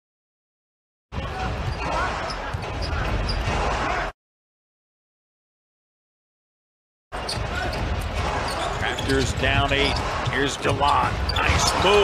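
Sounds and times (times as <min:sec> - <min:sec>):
arena crowd noise: 0:01.1 - 0:04.2, 0:07.2 - 0:12.0.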